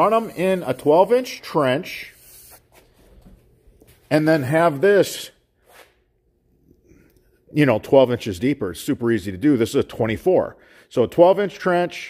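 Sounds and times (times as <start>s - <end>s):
hand brushing plastic pipe: 0.0s - 4.6s.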